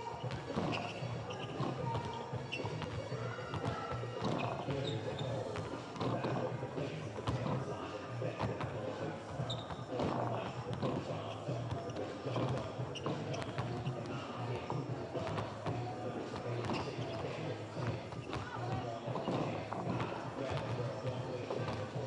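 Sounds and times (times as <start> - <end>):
arena music with low beat: 0.0 - 22.0
basketballs bouncing on court: 0.0 - 22.0.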